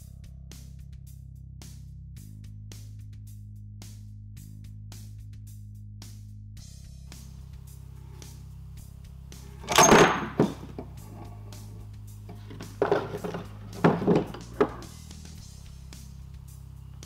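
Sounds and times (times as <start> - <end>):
background music: 6.6 - 17.0
tools knocking on bench: 9.6 - 10.9, 12.3 - 15.0
metal pulley clunking free: 9.6 - 11.4.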